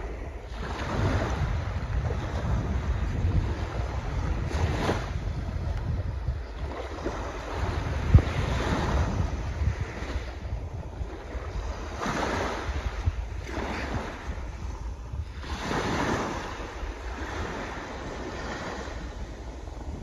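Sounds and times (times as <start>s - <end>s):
small waves on sandy shore: 0.0s - 20.0s
wind rumbling on microphone: 0.0s - 20.0s.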